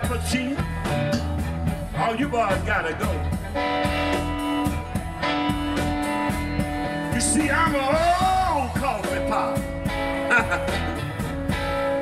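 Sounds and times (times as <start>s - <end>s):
bass guitar: 0.0s - 12.0s
electric guitar long notes: 0.0s - 12.0s.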